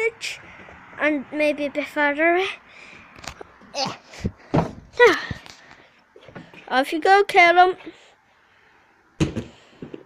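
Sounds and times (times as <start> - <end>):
heavy thump on foam mat: 4.2 - 4.9.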